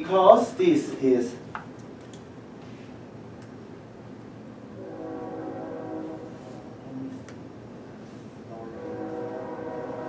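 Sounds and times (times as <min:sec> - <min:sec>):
distant train horn: 0:04.7 - 0:07.2, 0:08.4 - 0:10.0.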